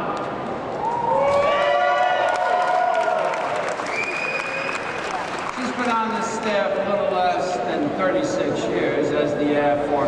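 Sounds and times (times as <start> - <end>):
audience applauding: 1.3 - 6.6.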